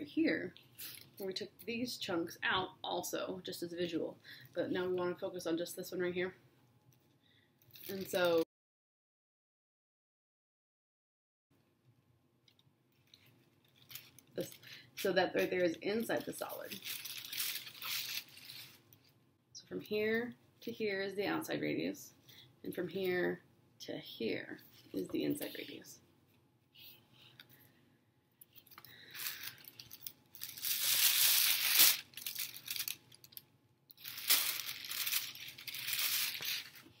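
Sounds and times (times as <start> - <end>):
tissue paper rustling and crinkling: 7.7 - 8.4, 13.0 - 18.8, 29.0 - 33.4, 34.0 - 37.0.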